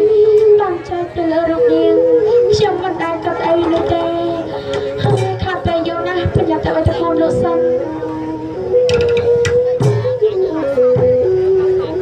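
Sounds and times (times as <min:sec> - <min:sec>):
theatre ensemble melody: 0:01.8 - 0:12.0
drum strokes: 0:04.7 - 0:05.8, 0:08.8 - 0:10.2.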